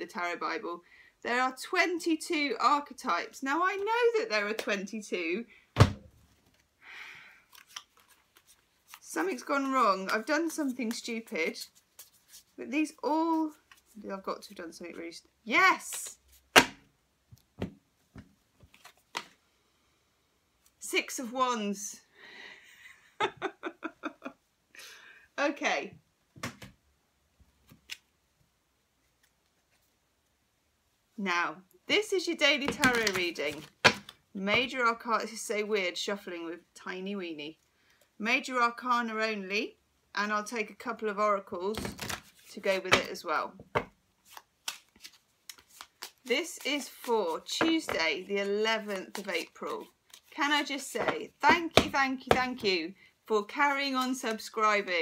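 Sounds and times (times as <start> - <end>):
cards being shuffled: 7.5 - 14.6, 18.2 - 19.4, 32.6 - 34.2, 41.7 - 43.2, 43.8 - 52.6.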